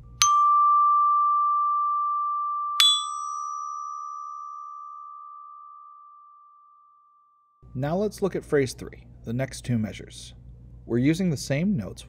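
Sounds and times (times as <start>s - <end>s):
glockenspiel bars ringing: 0.0s - 6.1s.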